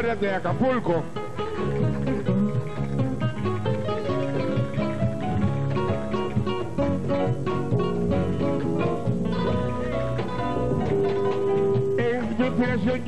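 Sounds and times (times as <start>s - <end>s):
acoustic guitars picking melody: 0.0s - 13.0s
walking bass runs: 1.1s - 13.0s.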